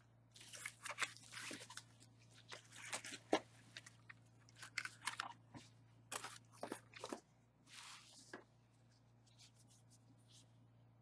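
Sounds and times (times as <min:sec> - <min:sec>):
cardboard and bubble wrap crinkling: 0:00.3 - 0:08.4.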